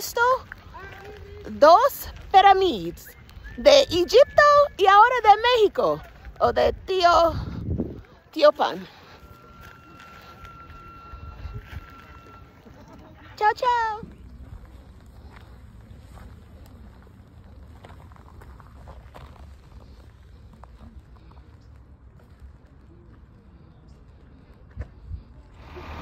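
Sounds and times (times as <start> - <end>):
footsteps on gravel: 0.0 - 12.9, 13.6 - 22.6.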